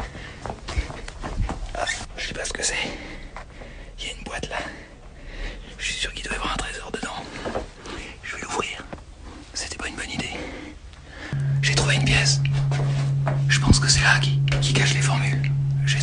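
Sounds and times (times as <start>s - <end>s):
man whispering: 1.7s - 3.0s, 4.0s - 4.9s, 5.8s - 7.3s, 8.0s - 10.7s.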